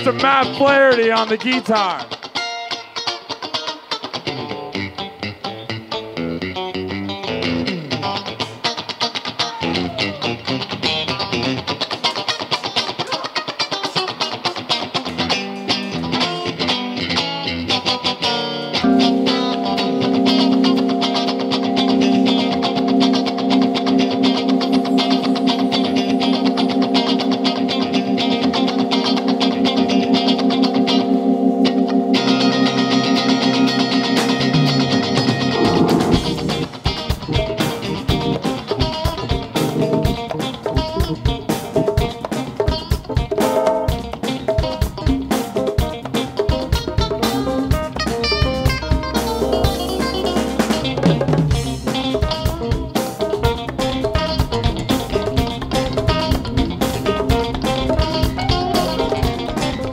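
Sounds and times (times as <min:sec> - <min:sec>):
bass: 0:00.0 - 0:01.8, 0:04.3 - 0:08.6, 0:09.5 - 0:11.7, 0:15.1 - 0:59.9
electric guitar: 0:00.0 - 0:59.9
drums: 0:04.2 - 0:59.9.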